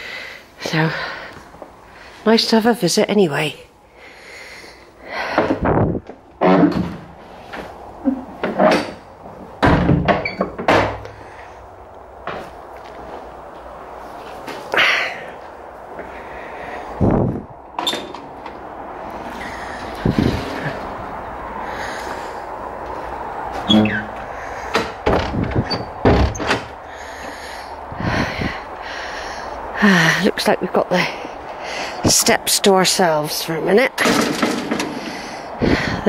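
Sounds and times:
wooden door knocks and clunks: 9.6 - 11.0, 24.7 - 26.7.

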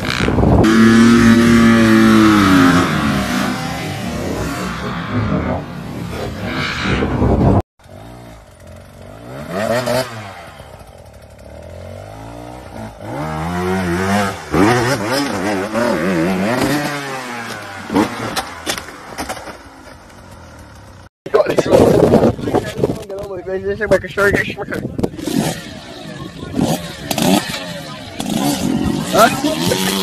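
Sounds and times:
dirt bike engine revving: 0.0 - 18.7, 25.0 - 30.0.

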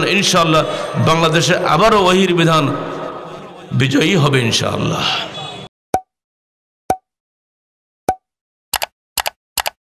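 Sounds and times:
quick double clicks: 8.7 - 9.8.

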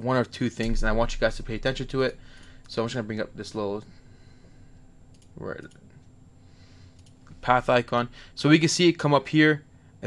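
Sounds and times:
computer mouse clicks: 5.1 - 5.8, 6.9 - 7.2.

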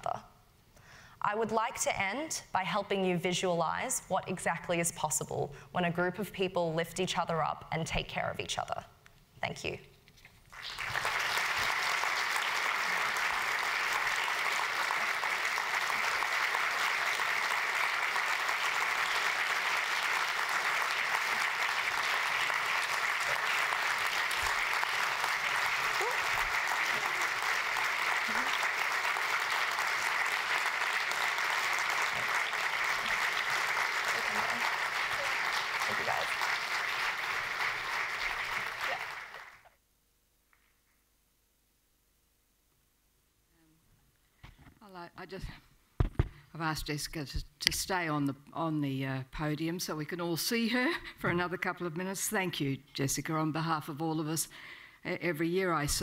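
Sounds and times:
audience applauding: 10.5 - 39.7.

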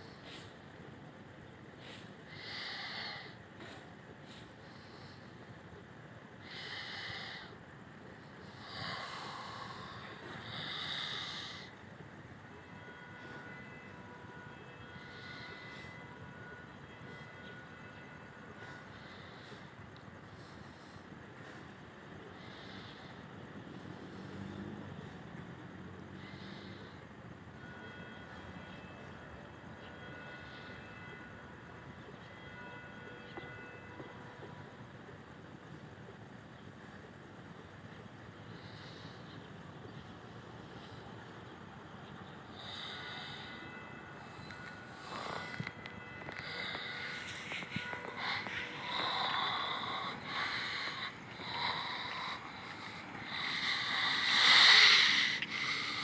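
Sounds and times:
city ambience hum: 0.0 - 56.0
distant church bells: 5.4 - 56.0.

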